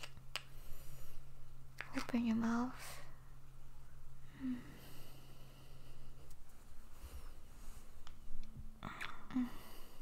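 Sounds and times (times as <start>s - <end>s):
low steady background hum: 0.0s - 10.0s
faint breathing: 0.5s - 1.5s, 4.2s - 8.0s, 8.8s - 10.0s
woman's soft hum-like vocal sound: 4.2s - 5.0s, 8.7s - 10.0s.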